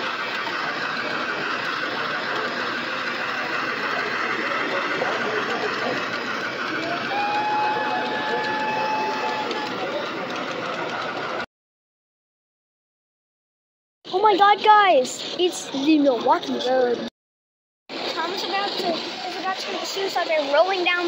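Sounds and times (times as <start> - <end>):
model train rapid clicking: 0.0 - 11.4, 17.9 - 21.0
crowd murmur in a hall: 0.4 - 11.4.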